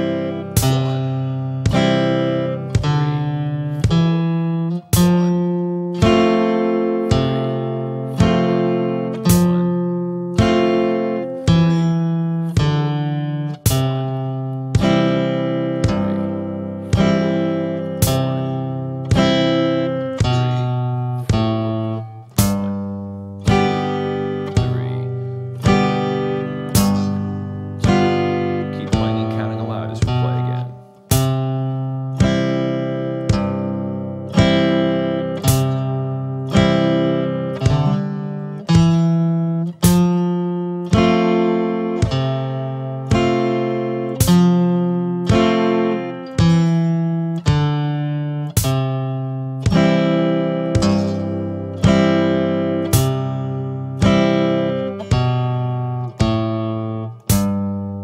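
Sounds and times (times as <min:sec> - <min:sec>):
electric guitar picked: 0:00.0 - 0:58.0.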